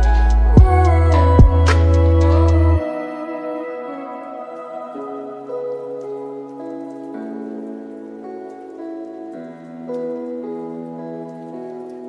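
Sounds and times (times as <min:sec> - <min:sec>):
ambient synth chords: 0:00.0 - 0:12.0.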